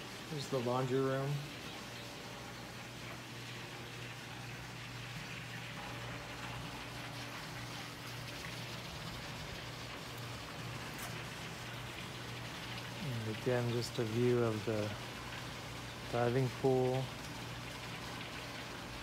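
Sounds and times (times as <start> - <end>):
low steady hum: 0.0 - 19.0
water splashing into pool: 1.3 - 19.0.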